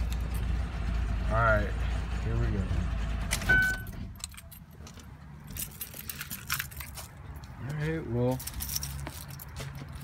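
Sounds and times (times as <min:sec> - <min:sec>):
car keys jangling: 0:03.3 - 0:10.0
light handling clicks and knocks: 0:03.3 - 0:10.0.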